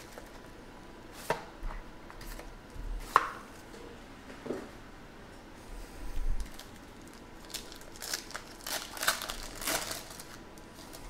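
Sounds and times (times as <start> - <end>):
foil pack rustling: 6.4 - 11.0.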